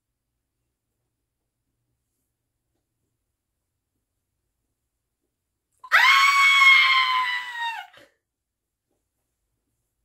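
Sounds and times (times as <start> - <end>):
high-pitched scream: 5.8 - 8.1.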